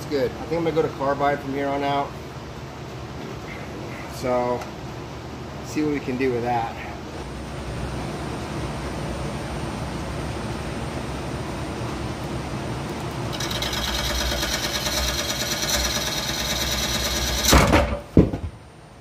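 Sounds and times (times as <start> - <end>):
wood lathe running: 13.3 - 17.5
loud crash: 17.4 - 18.0.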